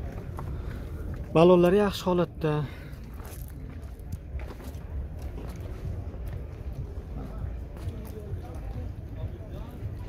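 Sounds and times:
steady low rumble: 0.0s - 10.0s
faint background voices: 2.4s - 10.0s.

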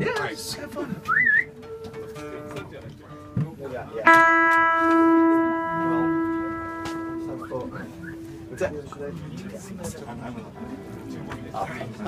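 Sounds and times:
acoustic guitar notes: 1.0s - 9.3s.

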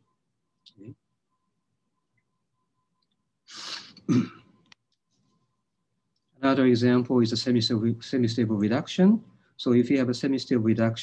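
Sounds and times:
man clearing his throat: 3.8s - 4.5s.

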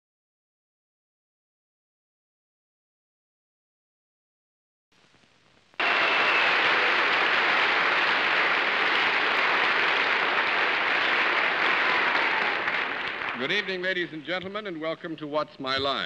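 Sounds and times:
audience applauding: 5.8s - 14.6s.

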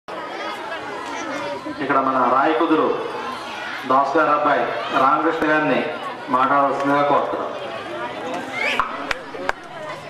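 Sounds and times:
voices chattering in a hall: 0.1s - 10.0s
man speaking into a microphone: 1.7s - 3.1s, 3.8s - 7.5s.

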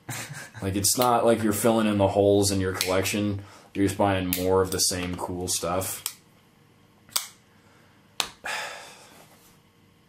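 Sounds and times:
breathy exhale: 7.5s - 9.3s.

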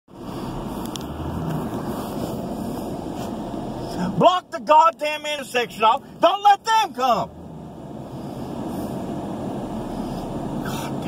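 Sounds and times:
car engine rumble: 0.1s - 11.0s
road noise inside car: 0.1s - 11.0s.

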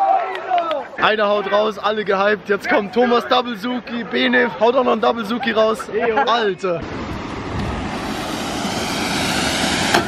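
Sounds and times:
waterfall pouring into pool: 7.9s - 10.0s.

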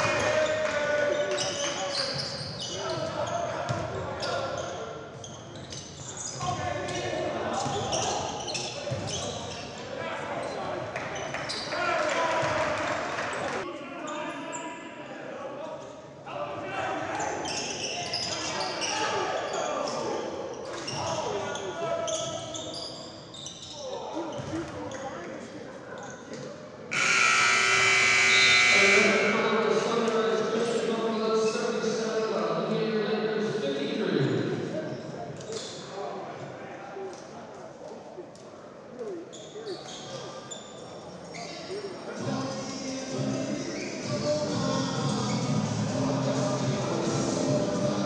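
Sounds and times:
voices in large hall: 0.0s - 48.0s
scoreboard horn: 26.9s - 29.6s.

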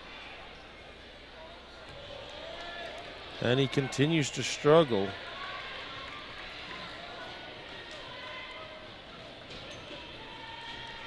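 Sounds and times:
crowd murmur in gymnasium: 0.0s - 11.0s.

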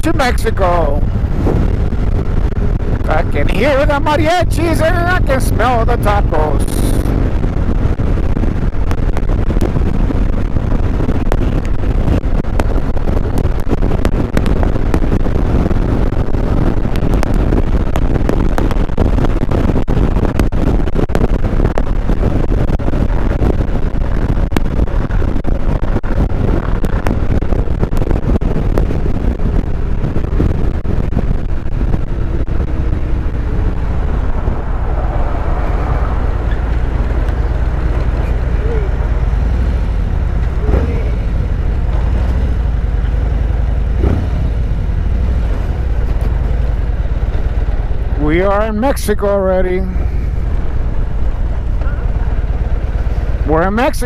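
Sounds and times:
motorcycle engine at speed: 0.0s - 54.0s
wind rush on microphone: 0.0s - 54.0s.

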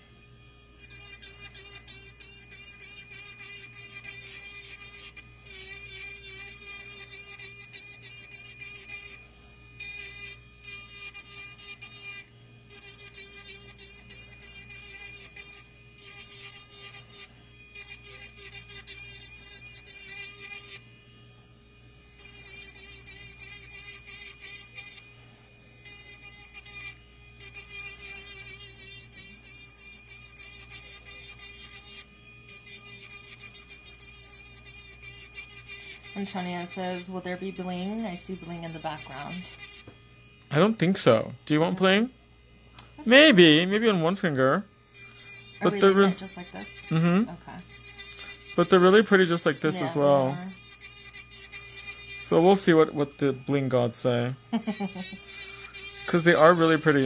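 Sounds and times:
nail drill grinding nail: 0.7s - 42.1s, 42.7s - 57.0s.

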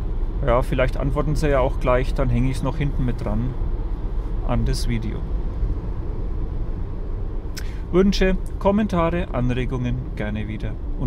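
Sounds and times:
road and tyre rumble in car: 0.0s - 11.0s.

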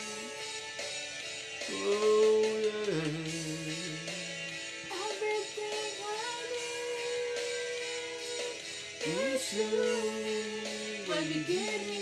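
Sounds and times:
recorded backing track: 0.0s - 12.0s
woman and man singing: 1.7s - 12.0s.

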